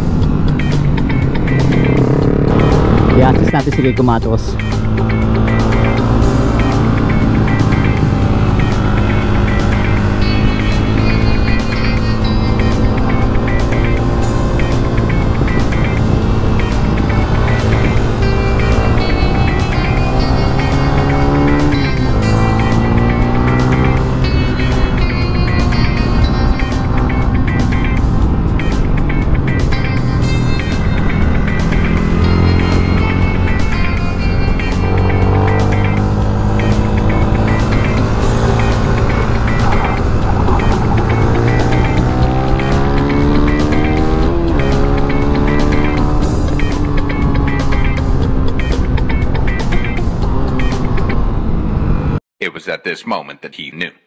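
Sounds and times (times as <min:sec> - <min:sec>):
music with steady beat: 0:00.0 - 0:51.0
motorcycle engine accelerating: 0:00.0 - 0:52.2.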